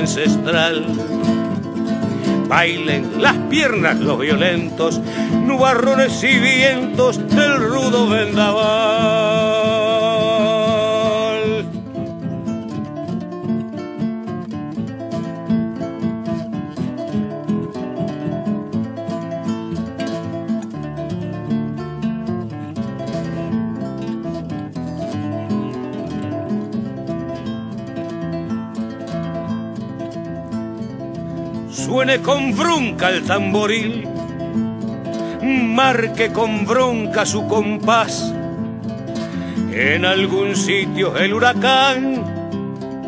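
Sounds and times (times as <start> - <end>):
acoustic guitar strummed and plucked: 0.0 - 43.0.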